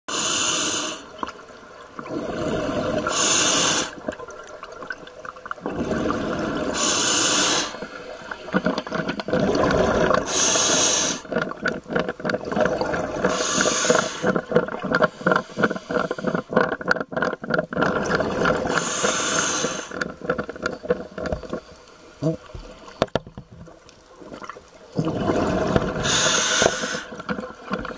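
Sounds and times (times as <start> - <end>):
diver inhaling through regulator: 0.1 - 1.1, 2.1 - 4.0, 5.7 - 8.2, 9.4 - 11.3, 13.1 - 14.4, 15.0 - 16.6, 18.2 - 20.0, 25.4 - 27.3
exhaled bubbles gurgling: 1.1 - 21.6, 24.2 - 27.9.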